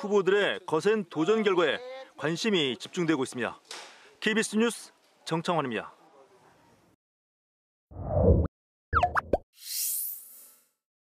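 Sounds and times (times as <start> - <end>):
plopping pops with gliding pitch: 9.0 - 9.4.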